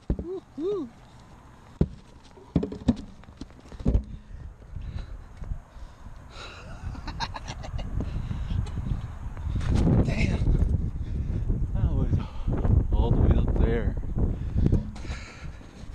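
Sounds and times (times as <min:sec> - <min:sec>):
sharp knocks: 0:01.8 - 0:03.2.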